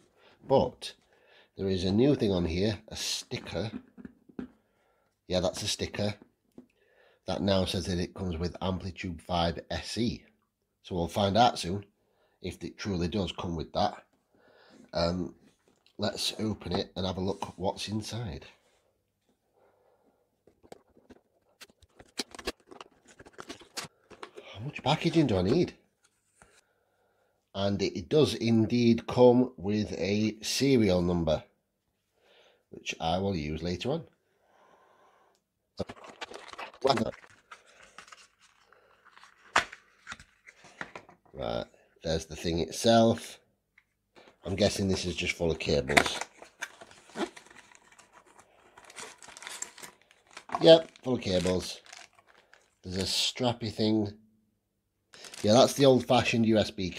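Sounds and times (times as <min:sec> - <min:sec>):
packaging rustling and crinkling: 0:20.5 - 0:25.7, 0:35.8 - 0:41.2, 0:44.2 - 0:53.2, 0:55.2 - 0:56.2.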